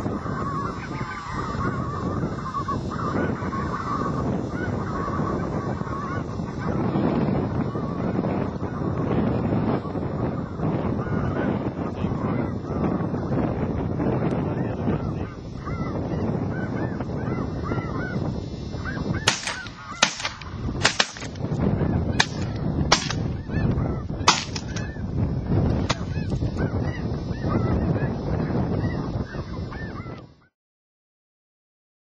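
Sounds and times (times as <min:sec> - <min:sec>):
geese calling: 0:00.0 - 0:30.5
shotgun shots: 0:19.3 - 0:21.4, 0:22.2 - 0:23.3, 0:24.3 - 0:24.8.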